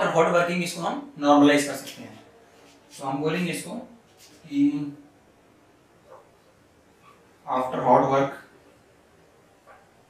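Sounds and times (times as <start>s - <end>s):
marker writing on whiteboard: 6.0s - 7.3s, 9.6s - 10.0s.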